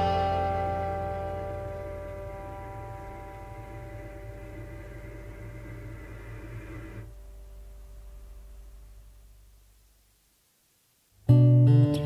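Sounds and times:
acoustic guitar chord ringing: 0.0s - 9.3s
faint low hum: 0.0s - 12.0s.

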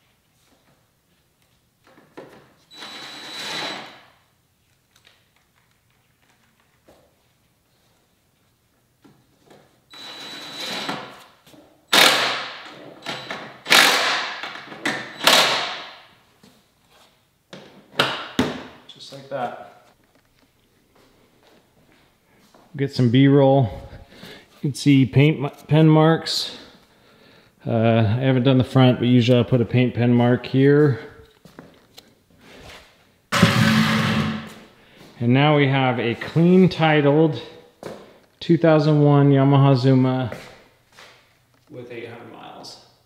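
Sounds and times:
cordless drill whining: 2.7s - 4.0s, 9.9s - 11.0s
loud sudden sounds: 33.3s - 34.6s.

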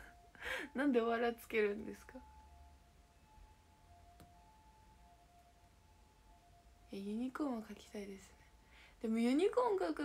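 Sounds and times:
faint steady high tone: 0.0s - 10.0s.

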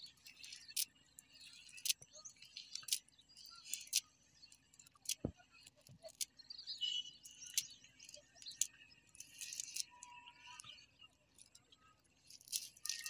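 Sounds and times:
birds chirping: 0.0s - 13.0s
cast net rustling and clicking: 12.2s - 13.0s.

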